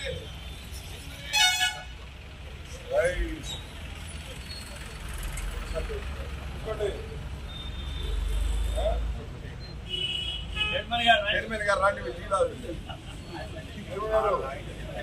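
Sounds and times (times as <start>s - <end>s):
street traffic rumble: 0.0s - 15.0s
vehicle horn toot: 1.2s - 1.9s, 9.9s - 11.1s
crowd voices: 11.3s - 15.0s.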